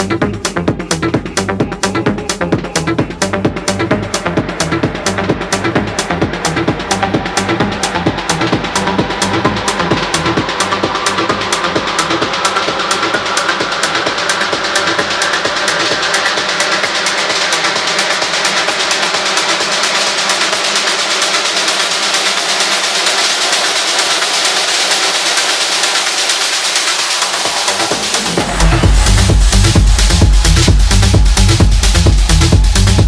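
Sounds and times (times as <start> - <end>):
fast hi-hats ticking: 0.0 - 33.0
rising noise sweep: 22.7 - 32.5.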